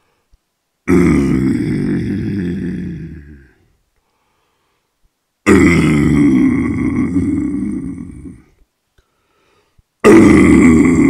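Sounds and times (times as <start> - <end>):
man growling death metal vocal: 0.9 - 3.7, 5.4 - 8.6, 10.0 - 11.0.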